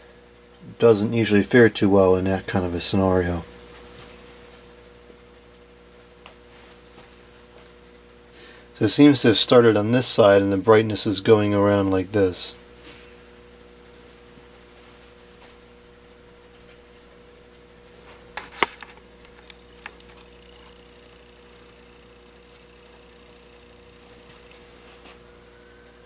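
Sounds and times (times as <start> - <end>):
fluorescent bulb ballast buzz: 0.0 - 26.0
faint distant siren: 25.1 - 26.0.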